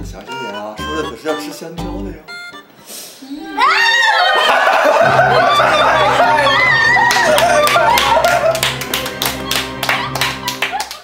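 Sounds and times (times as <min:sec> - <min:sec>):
background music: 0:00.0 - 0:03.6, 0:04.9 - 0:11.0
laughter: 0:04.0 - 0:08.8, 0:09.9 - 0:11.0
hands clapping: 0:07.0 - 0:11.0.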